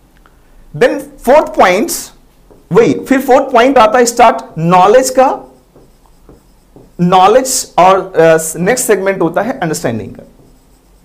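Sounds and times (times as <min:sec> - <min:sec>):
person speaking: 0:00.7 - 0:11.0
pen writing on board: 0:05.0 - 0:07.6, 0:10.2 - 0:11.0.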